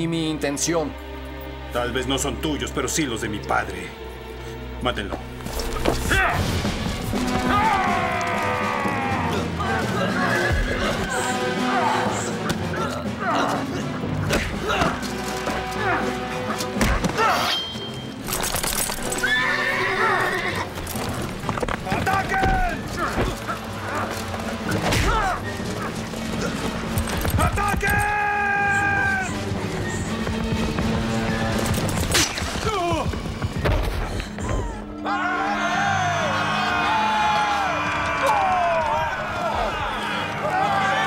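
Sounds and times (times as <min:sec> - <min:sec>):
dramatic music: 0:00.0 - 0:41.0
men grunting and shouting: 0:07.2 - 0:17.6, 0:21.8 - 0:29.5
horse whinnies: 0:19.1 - 0:21.0.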